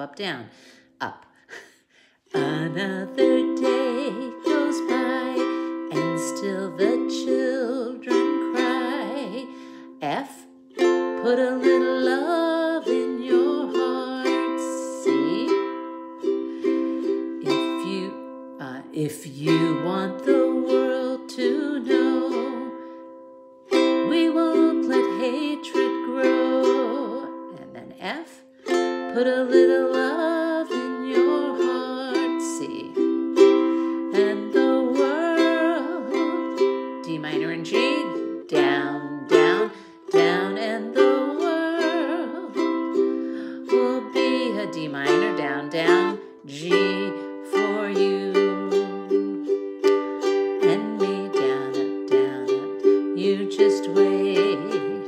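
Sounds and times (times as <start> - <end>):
ukulele strumming chords: 2.3 - 55.0.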